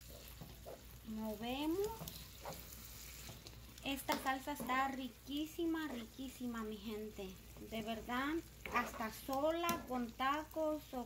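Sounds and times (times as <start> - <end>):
metal spoon scraping a pan: 0.0 - 1.0, 1.9 - 4.8, 8.6 - 9.2
sauce sizzling in a skillet: 0.0 - 11.0.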